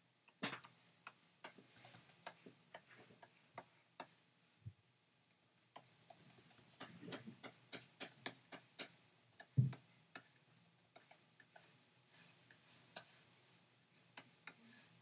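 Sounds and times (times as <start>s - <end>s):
stylus tapping drawing tablet: 6.7s - 11.7s.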